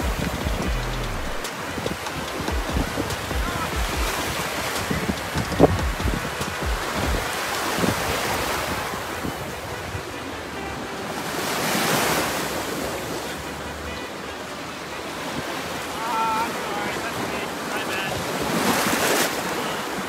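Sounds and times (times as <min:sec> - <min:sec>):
wind buffeting microphone: 0:00.0 - 0:13.2
waves washing on sandy beach: 0:00.0 - 0:20.0.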